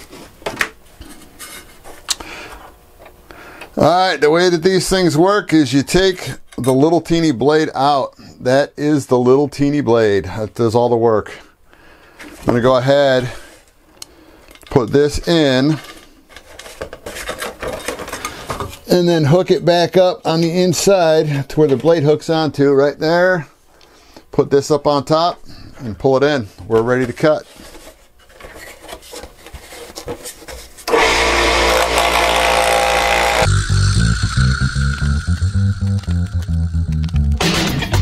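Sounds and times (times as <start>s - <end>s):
thin wood scraping on metal table: 1.0s - 2.0s.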